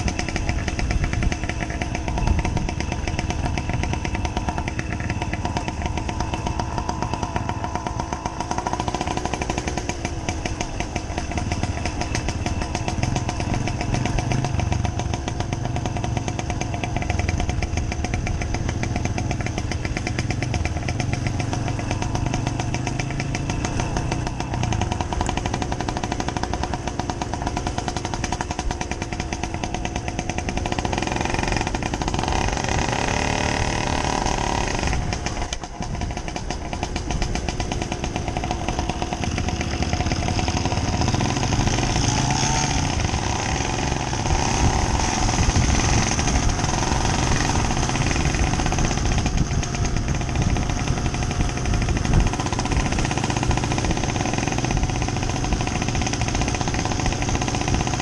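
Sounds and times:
moped engine running: 0.0 - 58.0.

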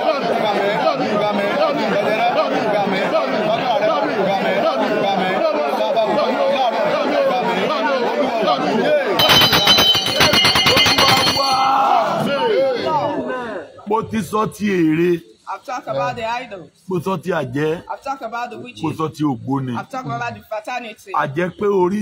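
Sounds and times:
many voices praying aloud: 0.0 - 20.5
bell ringing rapidly: 9.2 - 12.0.

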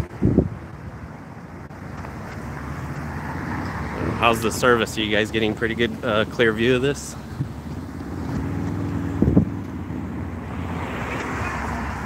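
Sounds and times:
wind on microphone: 0.0 - 1.0, 7.3 - 10.9.

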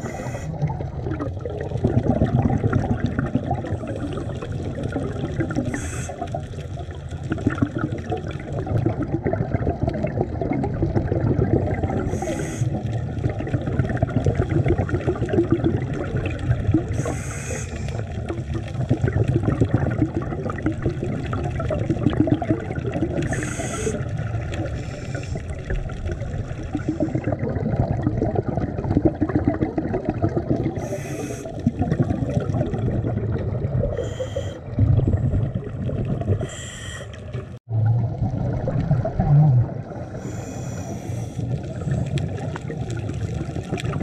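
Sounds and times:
regulator inhalation hiss: 0.0 - 0.6, 5.7 - 6.2, 12.1 - 12.8, 17.0 - 18.0, 23.3 - 24.1, 24.8 - 25.5, 30.8 - 31.6, 34.0 - 34.6, 36.4 - 37.2, 40.1 - 41.5
underwater bubbling rumble: 0.0 - 44.0.

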